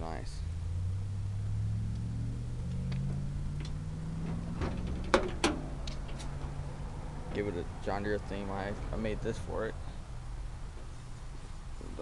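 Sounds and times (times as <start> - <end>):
low hum rising in pitch: 0.3 - 8.0.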